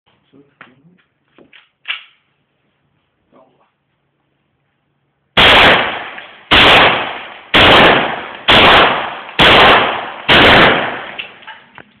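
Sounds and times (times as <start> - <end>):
pistol shots with echo: 5.4 - 11.4.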